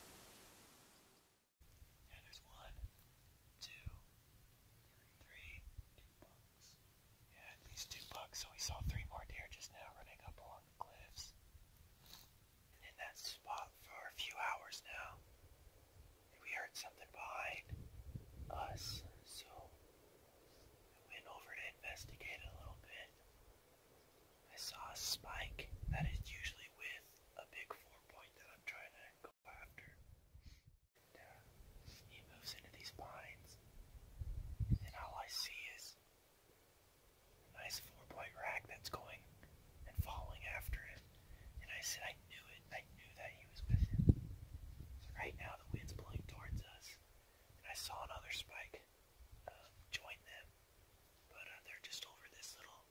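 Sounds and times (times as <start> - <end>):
man whispering: 2.0 - 4.2, 4.8 - 11.4, 12.8 - 15.2, 16.3 - 17.8, 18.4 - 19.8, 20.9 - 23.2, 24.5 - 30.0, 31.0 - 33.6, 34.7 - 36.0, 37.5 - 44.1, 45.0 - 47.0, 47.6 - 50.5, 51.3 - 52.9.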